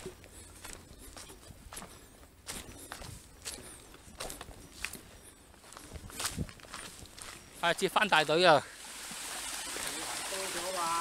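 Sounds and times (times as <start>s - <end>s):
footsteps on dry leaves: 0.0s - 8.4s.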